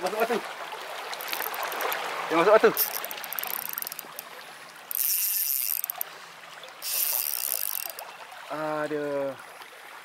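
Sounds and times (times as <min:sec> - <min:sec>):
fishing reel clicking: 0:01.2 - 0:02.0, 0:02.7 - 0:04.3, 0:04.9 - 0:06.1, 0:06.8 - 0:08.1
high-pitched reel buzzing: 0:01.2 - 0:02.0, 0:02.8 - 0:04.2, 0:04.9 - 0:06.0, 0:06.8 - 0:08.0.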